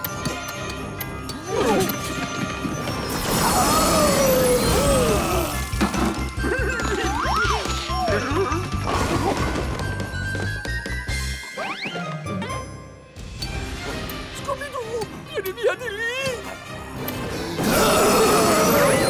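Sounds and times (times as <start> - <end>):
fast action music: 13.2 - 19.0.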